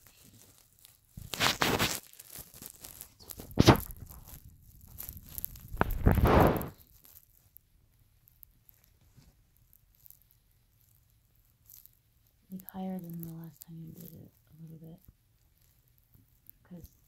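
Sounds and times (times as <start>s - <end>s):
fabric rustling: 0.0s - 7.6s.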